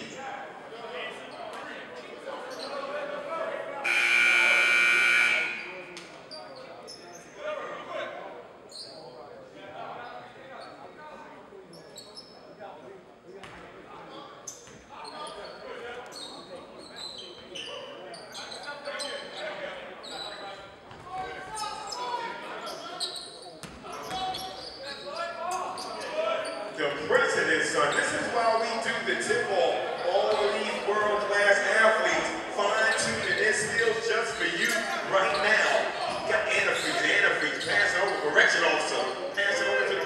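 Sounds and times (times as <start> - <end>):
voices of players and spectators: 0.0 - 40.0.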